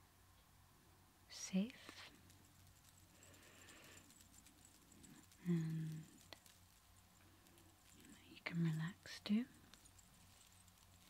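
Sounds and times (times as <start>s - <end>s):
woman's soft voiced sounds: 5.4s - 6.1s.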